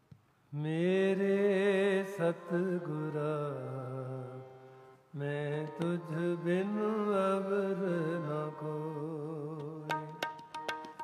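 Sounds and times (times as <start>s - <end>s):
harmonium: 0.6s - 11.0s.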